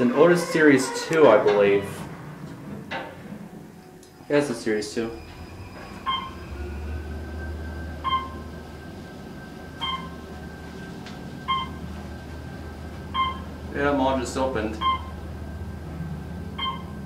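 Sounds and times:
elevator ride hum: 0.0 - 17.0.

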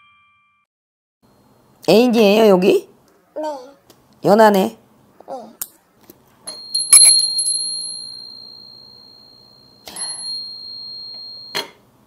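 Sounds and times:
small metal bell ringing: 6.5 - 11.7.

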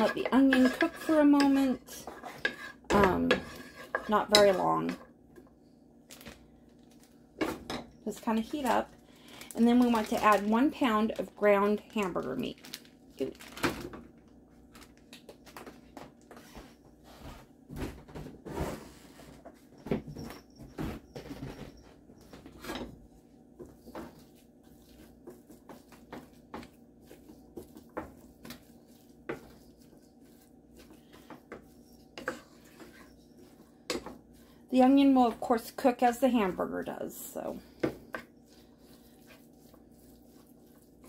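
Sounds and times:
wooden spoon scraping a pan: 0.0 - 5.2, 20.8 - 41.0.

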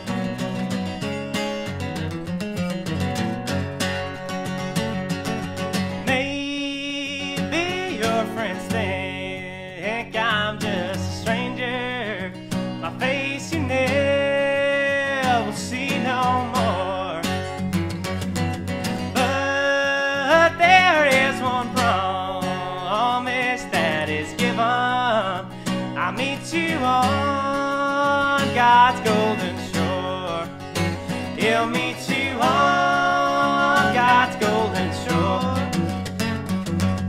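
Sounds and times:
acoustic guitar strumming: 0.0 - 37.0
man singing: 6.0 - 17.5, 19.1 - 36.1.

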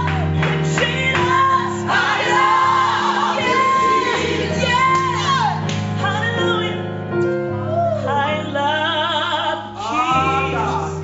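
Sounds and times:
woman singing gospel lead: 0.1 - 2.6, 3.4 - 6.8, 8.1 - 11.0
backing singers: 0.7 - 5.6.

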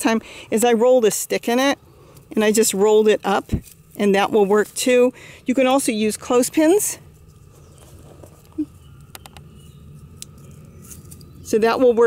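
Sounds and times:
faint handling noise: 7.0 - 11.4.

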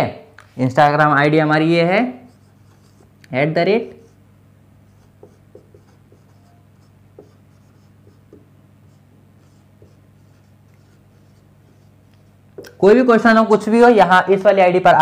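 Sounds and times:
marker writing on whiteboard: 2.1 - 4.2, 4.8 - 12.9.

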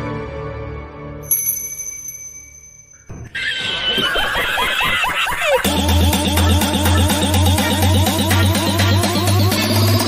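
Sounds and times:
music with pulsing beat: 5.6 - 10.0.

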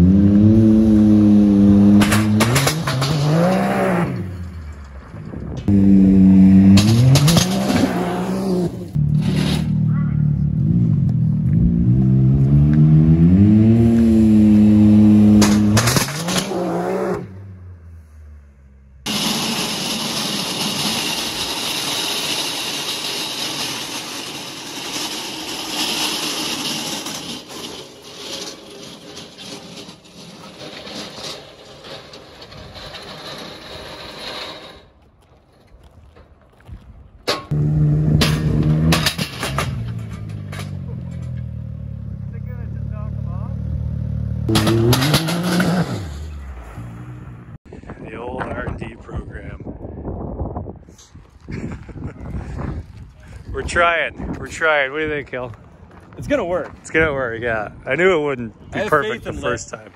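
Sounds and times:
engine revving hard: 11.7 - 17.4, 43.8 - 46.3.

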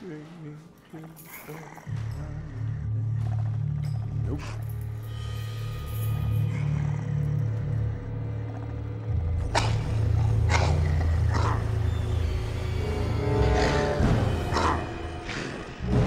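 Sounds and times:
deep low drone: 1.8 - 16.0
harsh rasping hits: 9.2 - 16.0.

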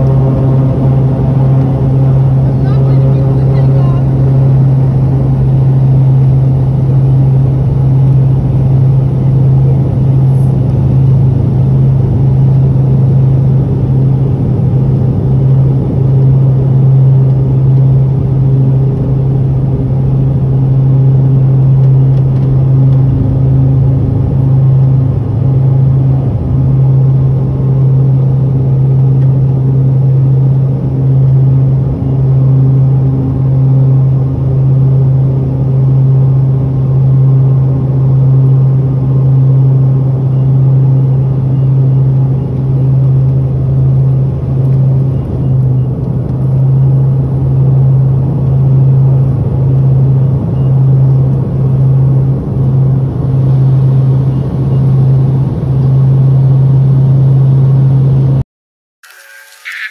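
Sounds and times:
turboprop engines droning: 0.0 - 58.4.

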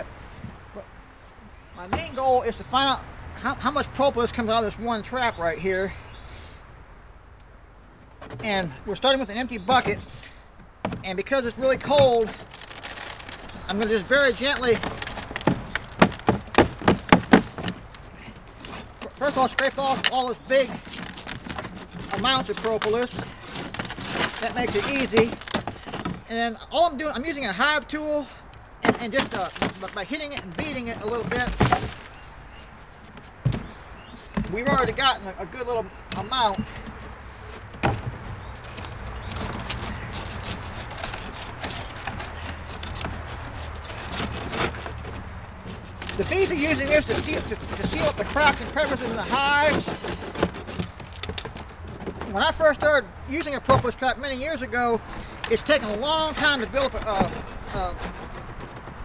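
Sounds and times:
metal tool scraping plastic: 9.2 - 26.4, 28.3 - 59.0.

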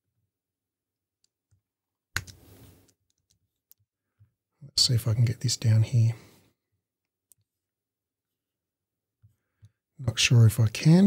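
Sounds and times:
person speaking: 4.6 - 6.4, 10.0 - 11.0.

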